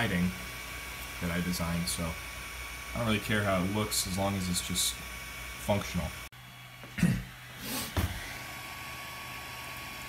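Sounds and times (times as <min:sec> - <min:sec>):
cooling fans humming: 0:00.0 - 0:10.0.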